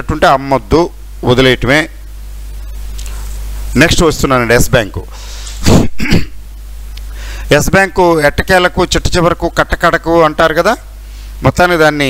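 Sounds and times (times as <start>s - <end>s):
steady low hum: 0.0s - 12.0s
man clearing his throat: 5.6s - 6.4s.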